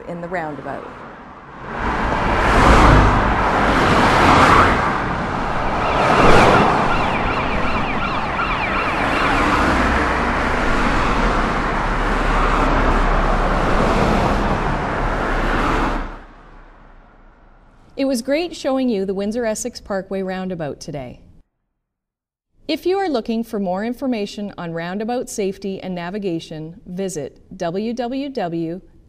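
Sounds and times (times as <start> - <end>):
cars driving past: 0.4 - 18.0
emergency vehicle siren: 2.2 - 17.0.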